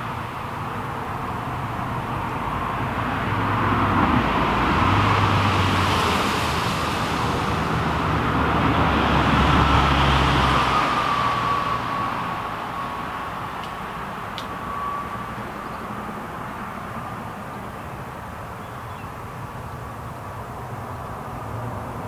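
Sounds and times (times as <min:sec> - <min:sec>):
road vehicles passing: 0:00.0 - 0:22.0.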